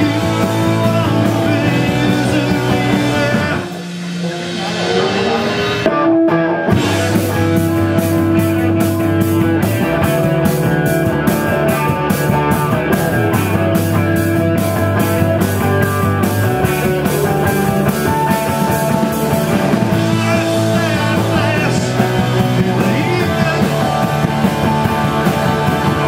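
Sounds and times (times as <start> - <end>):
drum beat: 0.0 - 26.0
held guitar notes: 0.0 - 26.0
rock band playing: 0.0 - 26.0.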